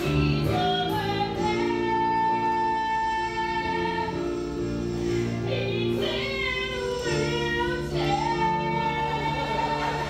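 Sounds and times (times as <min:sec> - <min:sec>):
woman singing a show tune: 0:05.4 - 0:10.0.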